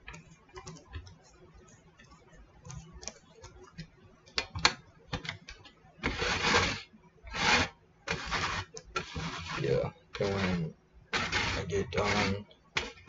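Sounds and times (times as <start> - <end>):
rasping grinding strokes: 6.0 - 13.0.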